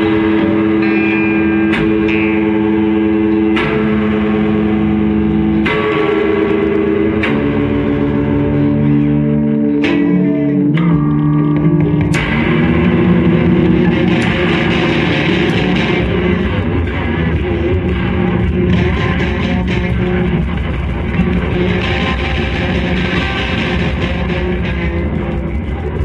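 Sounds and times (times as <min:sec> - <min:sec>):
electric guitars playing: 0:00.0 - 0:26.0.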